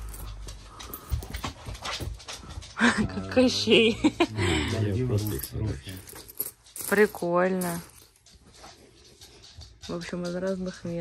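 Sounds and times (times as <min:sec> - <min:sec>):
metal coins clicking: 0:00.0 - 0:01.4, 0:05.2 - 0:08.4.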